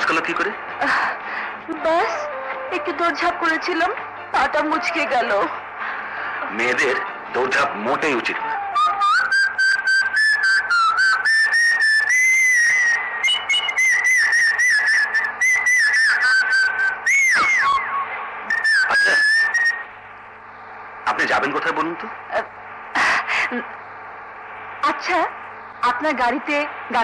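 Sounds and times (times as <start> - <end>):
person whistling a lively tune: 8.6 - 19.9.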